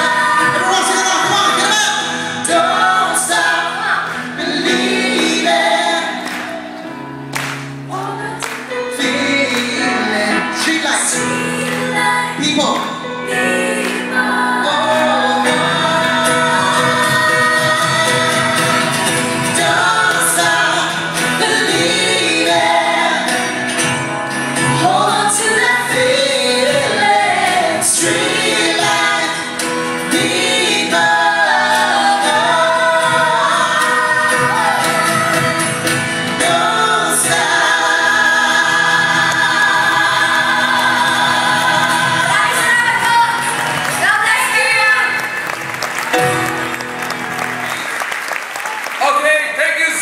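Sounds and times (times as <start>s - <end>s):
vocalists singing in harmony: 0.0s - 45.0s
live band playing a ballad: 0.0s - 48.1s
audience applause: 2.8s - 8.8s, 37.6s - 50.0s.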